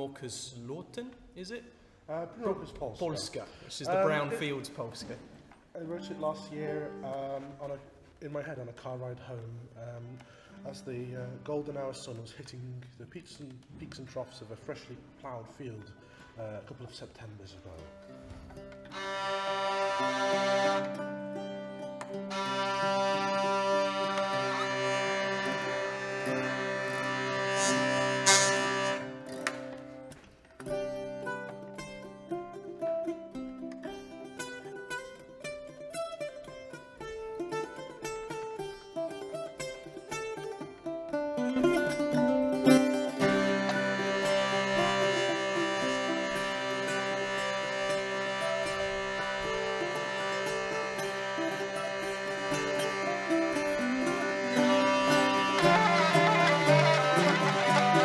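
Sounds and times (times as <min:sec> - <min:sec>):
plucked string instrument: 0:02.4 - 0:58.0
hurdy-gurdy drone: 0:03.9 - 0:04.7, 0:18.7 - 0:35.6, 0:41.4 - 0:58.0.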